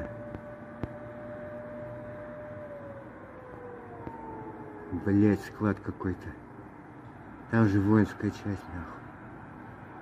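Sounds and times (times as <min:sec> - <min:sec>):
air-raid siren falling tone: 0:00.0 - 0:06.8.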